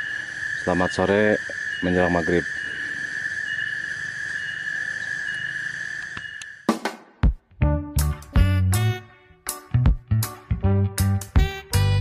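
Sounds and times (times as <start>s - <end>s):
high-pitched insect drone: 0.0s - 6.8s
on-off insect call: 0.0s - 7.2s
music: 6.7s - 12.0s.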